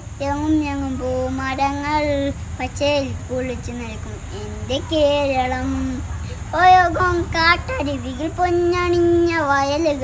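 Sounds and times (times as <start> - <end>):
low background hum: 0.0 - 10.0
child singing: 0.2 - 10.0.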